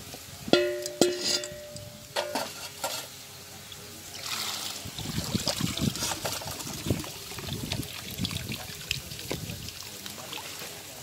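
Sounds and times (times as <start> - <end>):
metal knocks with ringing: 0.5 - 2.5
steel bowl clinking: 0.5 - 3.1.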